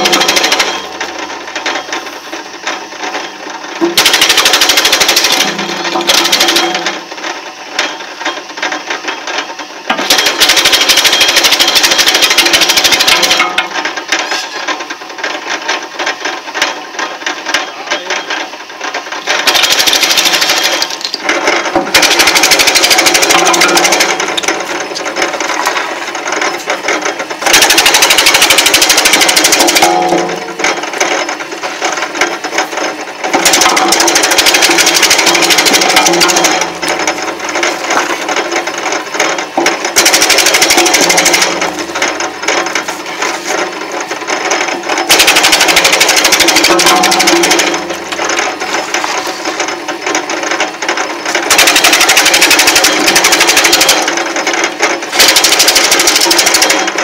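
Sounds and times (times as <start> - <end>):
wood chipper chopping clatter: 0.0 - 57.0
wood chipper running hum: 0.0 - 57.0.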